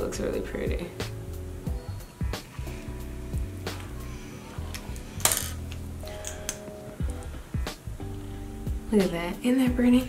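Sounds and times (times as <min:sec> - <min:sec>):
background music: 0:00.0 - 0:10.0
makeup items clicking on hard surface: 0:04.7 - 0:06.6.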